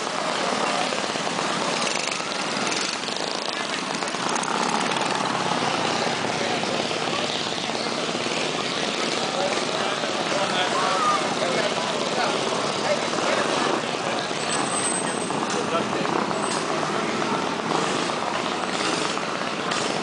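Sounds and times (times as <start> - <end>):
crowd chatter: 0.0 - 20.0
mini bike engines buzzing: 0.0 - 20.0.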